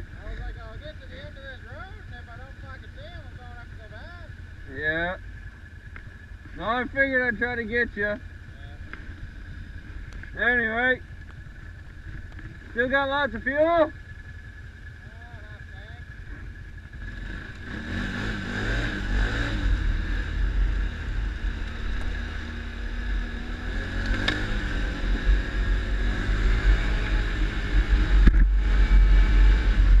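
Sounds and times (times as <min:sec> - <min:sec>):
atv engine rumbling: 0:00.0 - 0:30.0.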